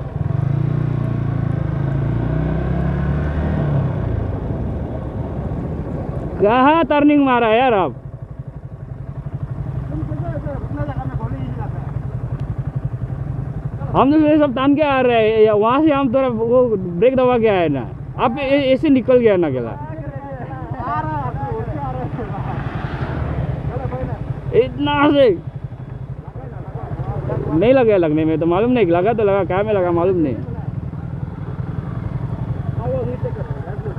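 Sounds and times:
motorcycle engine idling: 0:04.0 - 0:33.9.

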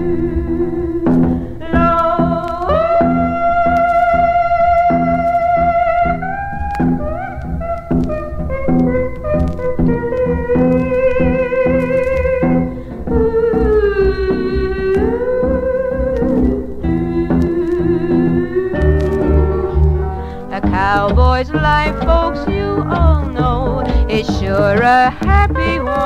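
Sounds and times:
bass: 0:00.0 - 0:26.0
strummed rhythm guitar: 0:00.0 - 0:26.0
sustained lead guitar melody: 0:00.0 - 0:26.0.

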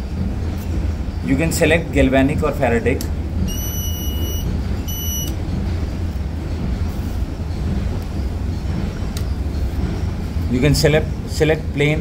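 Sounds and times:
high electronic beeps: 0:03.5 - 0:05.3.

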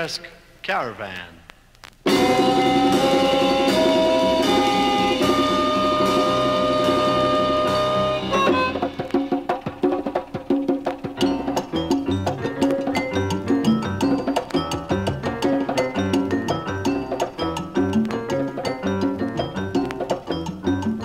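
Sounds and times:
hand drum rhythm: 0:02.1 - 0:21.0
latin jazz band playing: 0:02.1 - 0:21.0.

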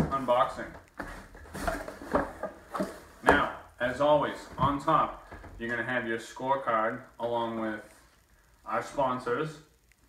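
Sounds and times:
cardboard flaps scraping and rustling: 0:00.0 - 0:03.4.

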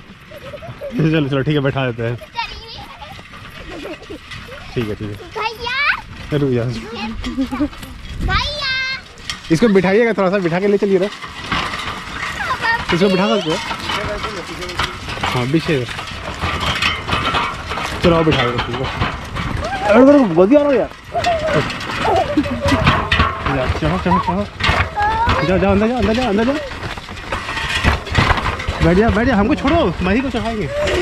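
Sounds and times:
wooden cart rattling and creaking: 0:00.0 - 0:31.0
high-pitched child's voice: 0:02.3 - 0:03.2, 0:05.2 - 0:06.0, 0:08.2 - 0:09.0, 0:25.0 - 0:25.5
children's voices in background: 0:24.0 - 0:26.8.

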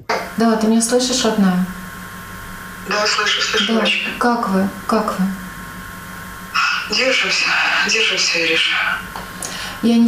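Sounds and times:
woman's voice through phone speaker: 0:02.9 - 0:05.4, 0:06.6 - 0:09.1.

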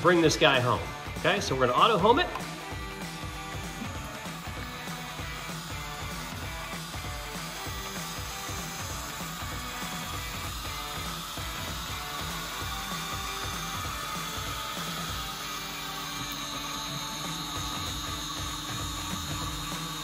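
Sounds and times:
background music: 0:00.0 - 0:20.0
stepper motors running: 0:00.9 - 0:20.0.

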